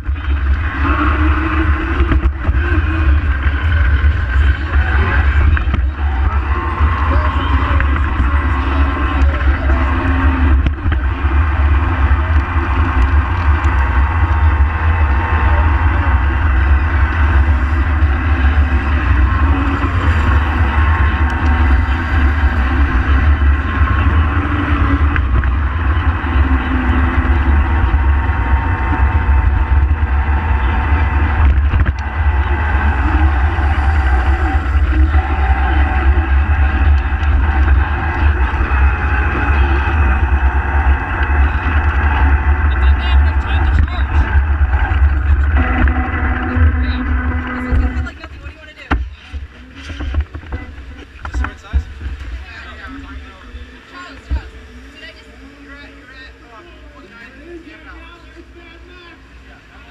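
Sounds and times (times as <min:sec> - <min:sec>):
electric motor whine: 0:00.0 - 0:57.8
faint voices: 0:00.0 - 0:59.9
wind buffeting microphone: 0:07.8 - 0:48.2.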